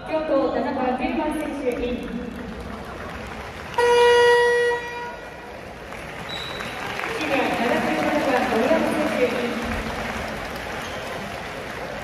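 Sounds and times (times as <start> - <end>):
arena horn blast: 3.7 - 5.5.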